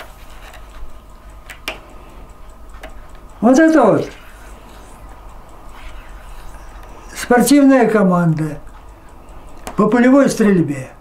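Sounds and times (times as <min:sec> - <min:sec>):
album pages clicking: 0:00.0 - 0:01.9.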